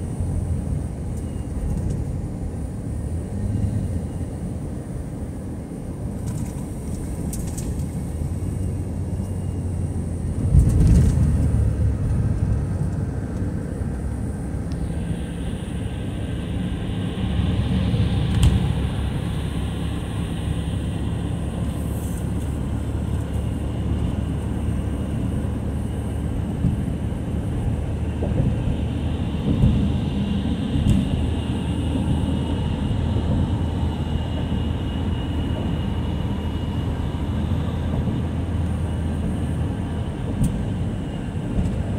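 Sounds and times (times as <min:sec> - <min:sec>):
car cabin road and engine noise: 0:00.0 - 0:41.9.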